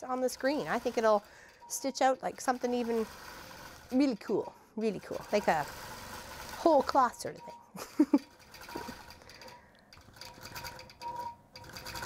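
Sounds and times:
quilting machine needle stitching: 0.0s - 7.5s, 8.2s - 12.0s
motor hum: 0.0s - 12.0s.

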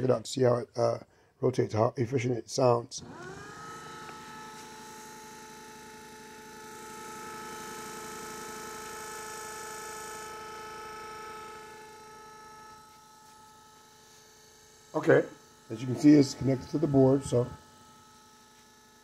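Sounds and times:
electric motors whining: 3.0s - 19.0s.

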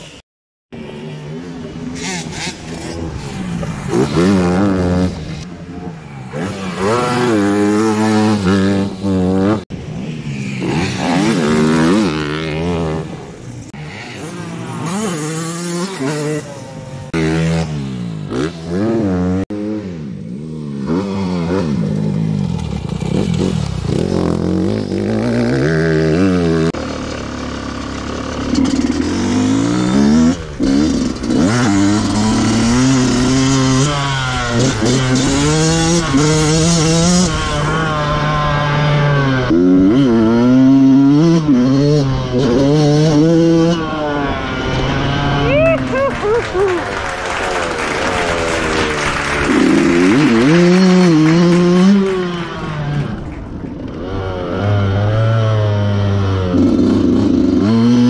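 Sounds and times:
dirt bike engines revving: 0.8s - 58.0s.

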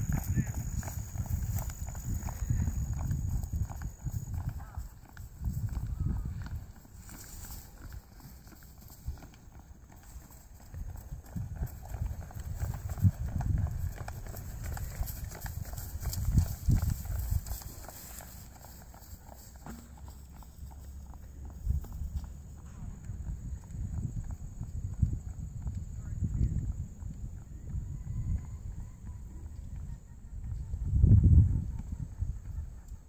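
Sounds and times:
wind on microphone: 0.0s - 8.1s, 10.5s - 17.9s, 21.5s - 33.0s
horse hoofbeats on grass: 0.0s - 32.9s.

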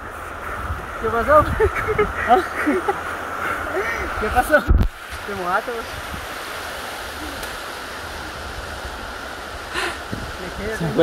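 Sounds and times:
river water rushing over rocks: 0.0s - 11.0s.

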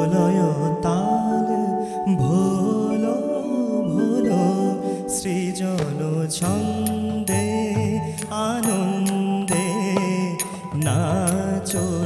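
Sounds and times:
held instrumental notes: 0.0s - 12.0s
man singing ornamented melody: 0.0s - 12.0s
percussion strokes: 4.3s - 12.0s.

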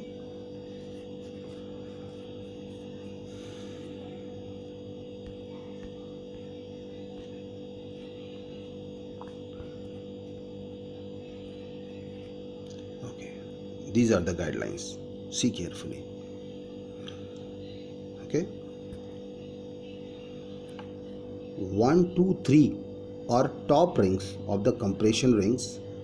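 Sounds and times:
electrical hum: 0.0s - 26.0s.

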